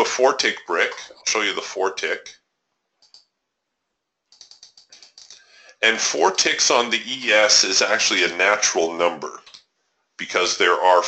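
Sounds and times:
computer mouse clicks: 3.0 - 3.3, 4.3 - 5.4.

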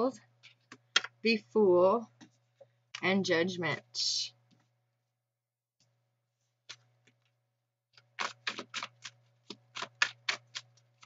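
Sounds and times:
cards being shuffled: 8.0 - 11.0.

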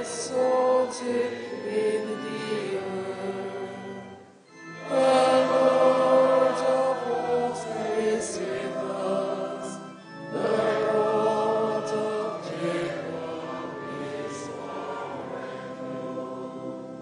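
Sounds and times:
church choir singing: 0.0 - 17.0.

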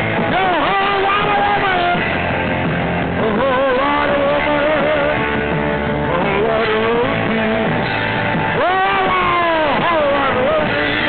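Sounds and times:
distorted electric guitar bending notes: 0.0 - 11.0.

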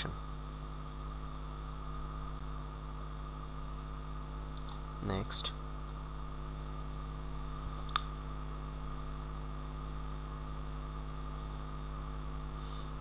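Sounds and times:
electrical mains hum: 0.0 - 13.0.

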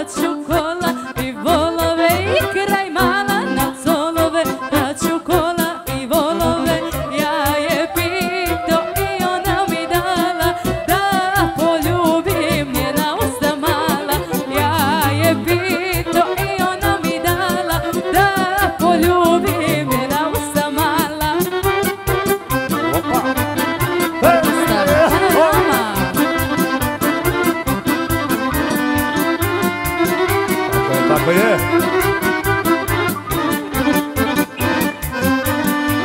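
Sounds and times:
folk band playing: 0.0 - 36.0
person singing ornamented melody: 18.6 - 21.0, 24.2 - 26.2.

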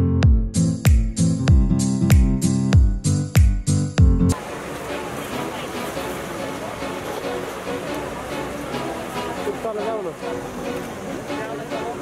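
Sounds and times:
background music: 0.0 - 12.0
dense mix of voices: 4.4 - 12.0.

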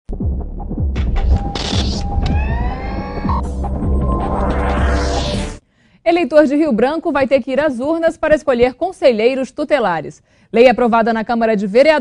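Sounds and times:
deep bass hits: 0.1 - 5.6
rising synth sweep: 1.0 - 5.6
whoosh: 1.0 - 5.6.

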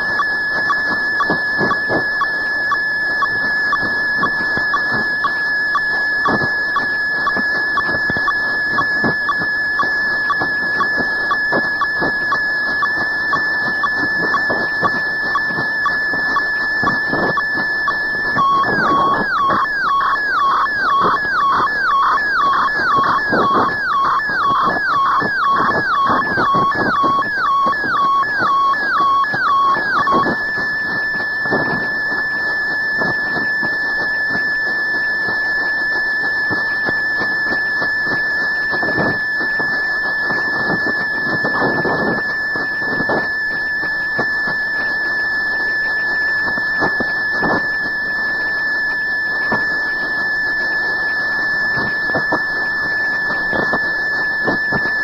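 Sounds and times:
high-pitched electronic tone: 0.0 - 34.4, 38.8 - 55.0.

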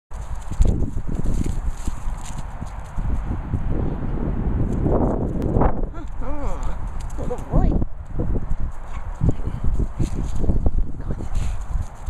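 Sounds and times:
footsteps on grass: 0.2 - 3.3.

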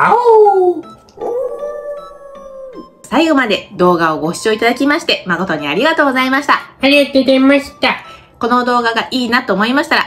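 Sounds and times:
man imitating wolf howl: 0.0 - 3.0.

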